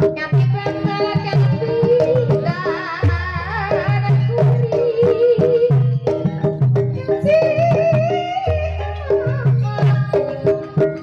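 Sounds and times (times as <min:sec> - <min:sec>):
drum strokes: 0:00.0 - 0:11.0
struck pitched percussion: 0:00.0 - 0:11.0
wavering sung vocal: 0:00.4 - 0:06.2, 0:07.0 - 0:11.0.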